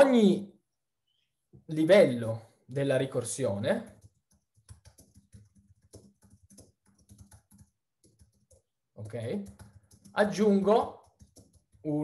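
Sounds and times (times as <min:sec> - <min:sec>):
typing on computer keyboard: 0:03.6 - 0:12.0.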